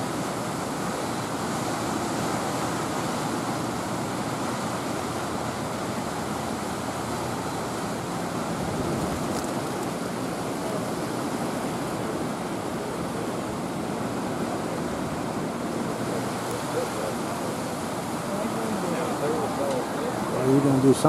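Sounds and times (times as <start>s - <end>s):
turbulent water rushing: 0.0s - 21.0s.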